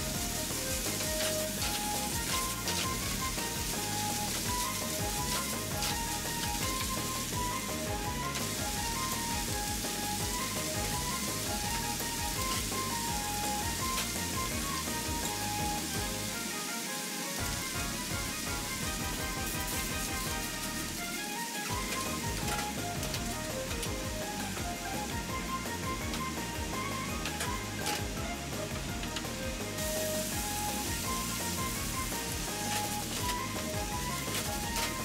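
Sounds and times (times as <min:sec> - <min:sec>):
light background music: 0:00.0 - 0:35.0
vegetables sizzling in a pan: 0:00.0 - 0:35.0.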